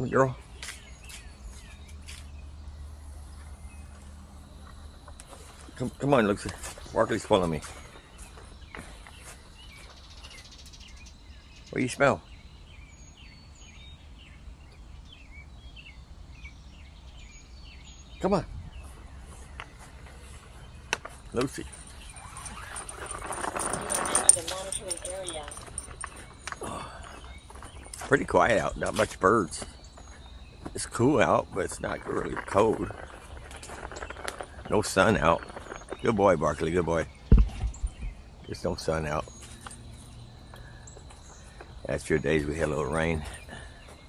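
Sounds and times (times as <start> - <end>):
rustling noise: 31.9 - 36.2.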